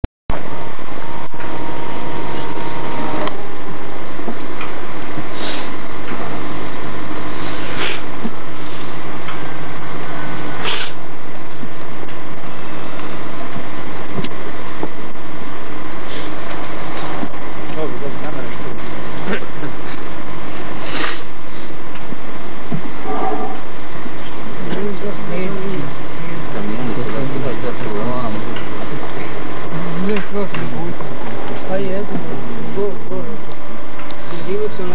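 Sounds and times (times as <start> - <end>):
indistinct voices: 0.3 - 34.9
recording hum and hiss: 0.3 - 34.9.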